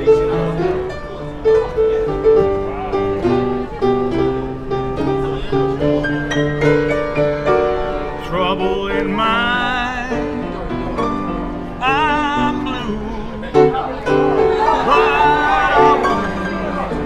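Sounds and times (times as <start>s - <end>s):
blues piano playing: 0.0s - 17.0s.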